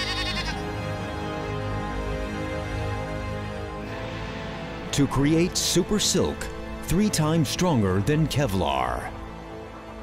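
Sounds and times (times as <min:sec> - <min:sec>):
goat bleating: 0:00.0 - 0:00.7.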